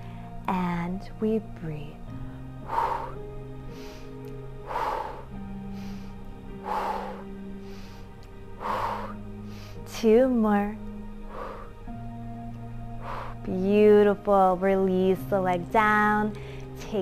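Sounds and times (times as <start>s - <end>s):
woman breathing: 0.0s - 0.5s, 2.1s - 10.0s, 11.0s - 13.6s, 16.3s - 16.8s
slow background music: 0.0s - 17.0s.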